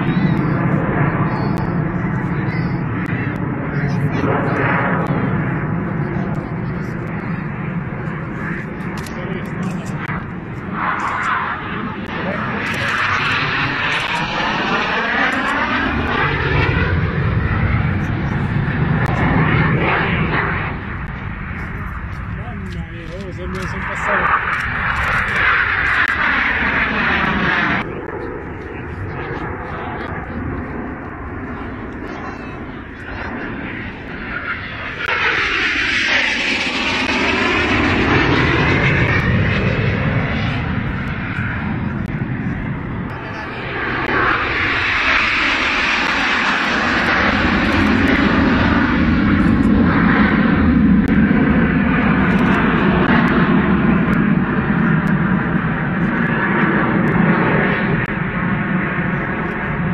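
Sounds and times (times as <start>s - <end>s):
jet planes flying past: 0.0s - 59.9s.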